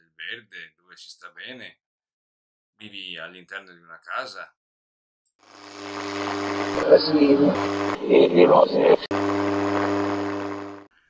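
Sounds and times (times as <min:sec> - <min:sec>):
low buzz from radio receiver: 0:05.6 - 0:10.9.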